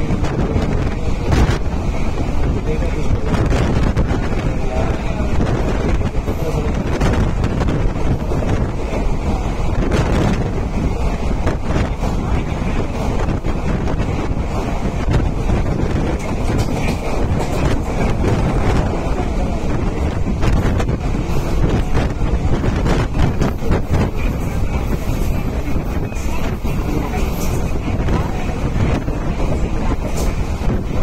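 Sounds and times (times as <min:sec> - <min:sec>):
train running on rails: 0:00.0 - 0:31.0
wind buffeting microphone: 0:00.0 - 0:31.0.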